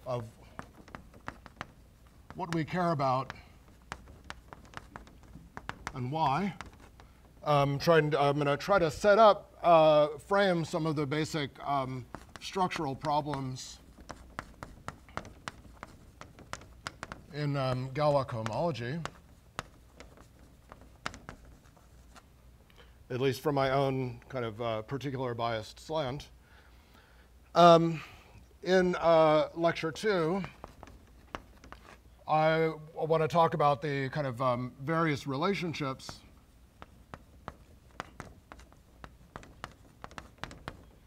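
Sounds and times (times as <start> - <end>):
chalk tapping and scratching on blackboard: 0.0 - 9.3, 10.0 - 22.9, 28.8 - 32.2, 34.0 - 41.0.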